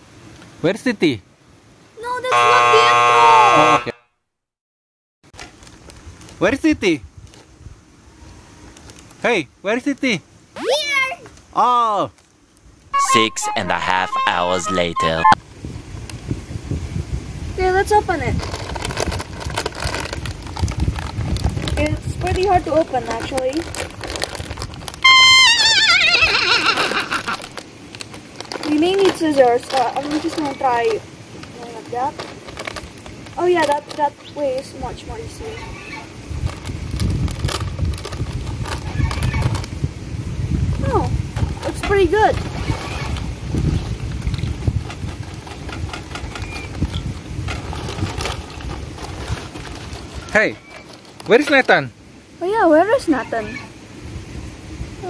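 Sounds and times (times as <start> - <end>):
snack bag crinkling: 18.4 - 34.2, 47.6 - 51.8
comedic horse whinny effect: 25.1 - 27.5.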